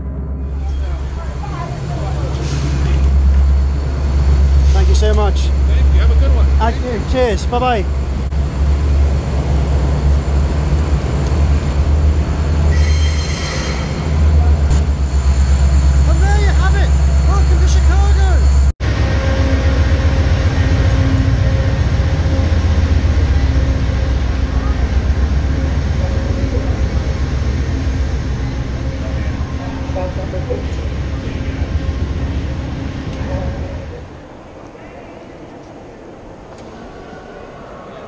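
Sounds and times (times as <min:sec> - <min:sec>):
train rumbling: 0:00.0 - 0:38.0
people's voices: 0:00.4 - 0:03.7, 0:24.3 - 0:38.0.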